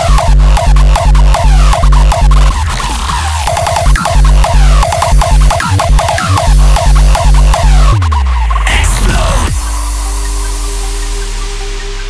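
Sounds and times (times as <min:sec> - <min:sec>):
kick drum: 0:00.0 - 0:02.6, 0:03.5 - 0:09.7
bass downward sweep: 0:00.0 - 0:12.0.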